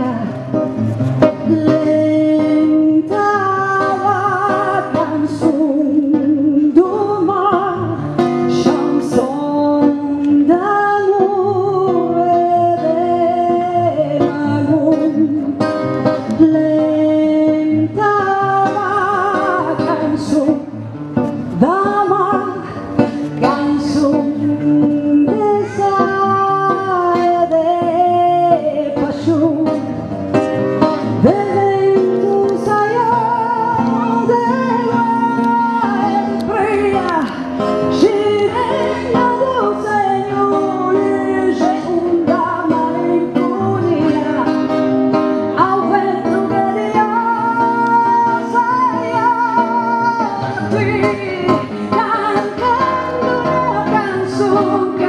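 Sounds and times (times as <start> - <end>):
plucked acoustic guitar: 0.0 - 55.0
woman singing: 0.0 - 55.0.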